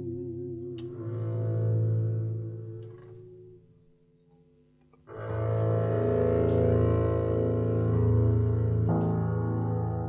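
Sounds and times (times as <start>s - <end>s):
bowed double bass long notes: 0.0s - 4.1s, 5.0s - 10.0s
sustained instrument tones: 0.0s - 10.0s.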